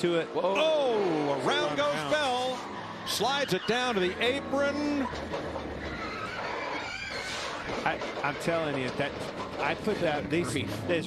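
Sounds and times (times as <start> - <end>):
track noise: 0.0 - 11.0
tyres squealing and skidding: 0.3 - 11.0
thin rising squeal: 0.6 - 8.8.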